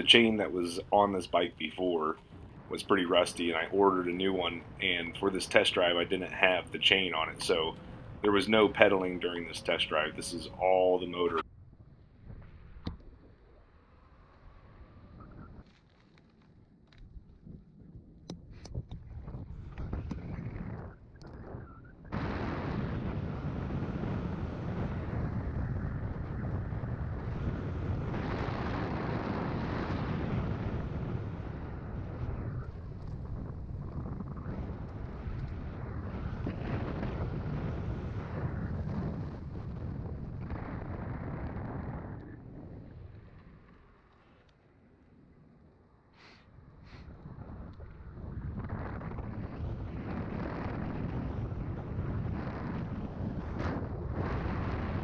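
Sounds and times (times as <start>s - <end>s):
wind rushing over microphone: 0.0s - 13.6s, 17.0s - 44.0s, 45.7s - 55.0s.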